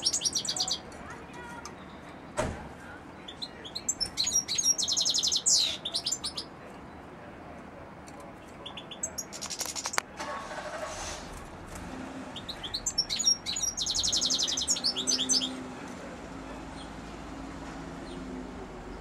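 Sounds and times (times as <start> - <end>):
goldfinch twittering song: 0.0 - 0.9, 3.3 - 6.5, 12.4 - 15.6.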